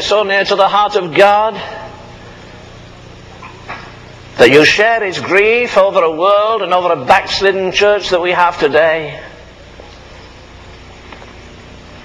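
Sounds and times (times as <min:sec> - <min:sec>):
background hiss: 0:00.0 - 0:12.0
low hum: 0:00.0 - 0:12.0.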